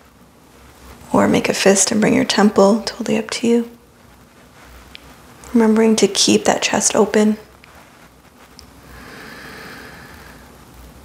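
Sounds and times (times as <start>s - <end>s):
soft breath into microphone: 8.8s - 10.8s.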